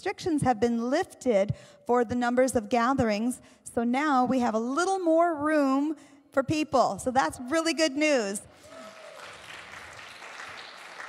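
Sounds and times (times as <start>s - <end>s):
light applause: 8.6s - 11.0s.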